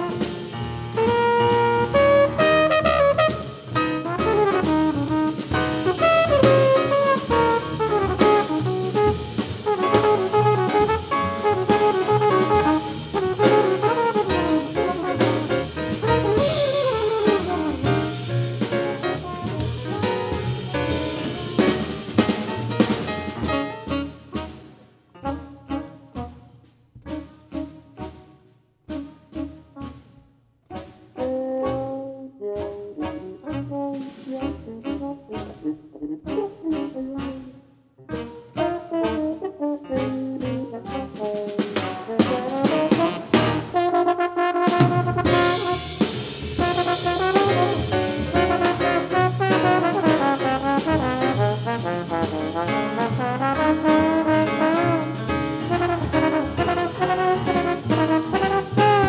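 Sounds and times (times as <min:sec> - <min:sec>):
jazz band playing: 0:00.0 - 0:59.0
horns playing short phrases: 0:00.9 - 0:22.8, 0:38.1 - 0:59.0.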